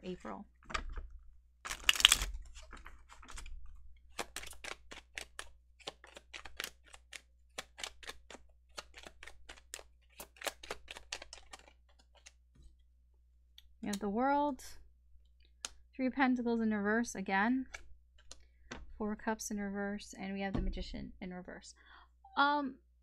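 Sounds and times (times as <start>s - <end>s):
cards shuffling rustle: 0.8s - 12.8s.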